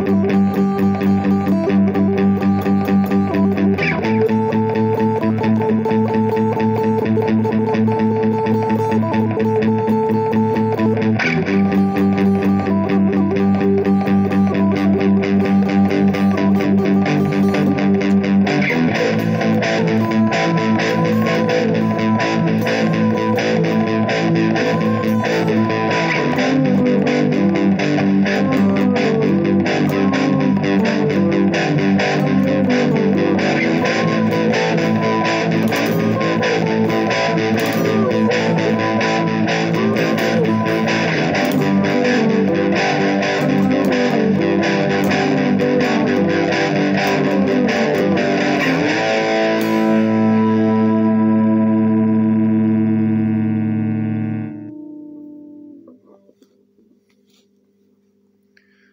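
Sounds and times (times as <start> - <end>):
backing track: 0.0 - 56.2
electric guitar playing: 0.0 - 56.5.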